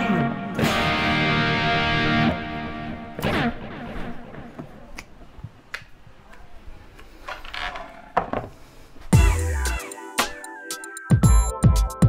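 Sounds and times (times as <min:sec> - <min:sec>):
electric guitar notes ringing: 0:00.0 - 0:04.6.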